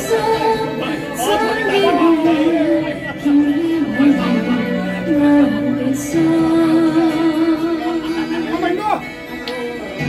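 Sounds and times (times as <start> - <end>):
woman singing: 0.0 - 8.5
backing music: 0.0 - 10.0.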